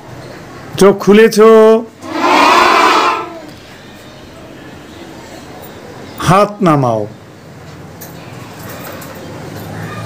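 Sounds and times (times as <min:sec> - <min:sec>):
children shouting in chorus: 0:02.0 - 0:03.6.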